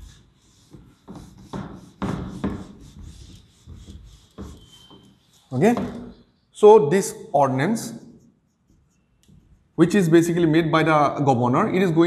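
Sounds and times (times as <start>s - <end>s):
marker writing on a whiteboard: 0.0s - 6.6s, 7.6s - 10.7s
man talking: 5.5s - 8.0s, 9.8s - 12.0s.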